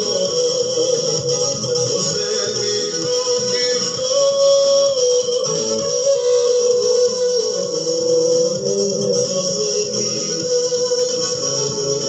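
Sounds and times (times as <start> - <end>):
person singing: 0.0 - 12.0
upbeat pop song: 0.0 - 12.0.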